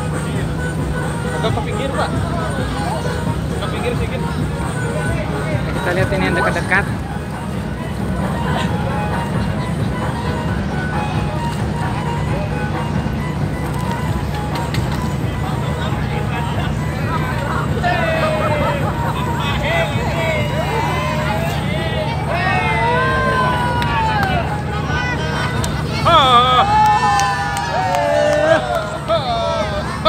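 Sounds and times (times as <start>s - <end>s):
boat engine droning: 0.0s - 30.0s.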